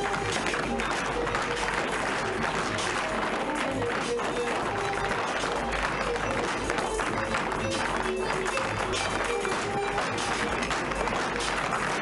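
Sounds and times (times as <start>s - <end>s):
audience clapping: 0.0s - 12.0s
music: 0.0s - 12.0s
tap shoes clattering: 0.0s - 12.0s.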